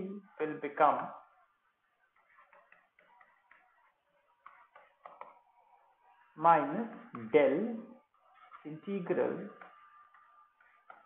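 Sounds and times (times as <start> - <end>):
stylus tapping on pen tablet: 2.1 - 5.7, 9.5 - 11.0.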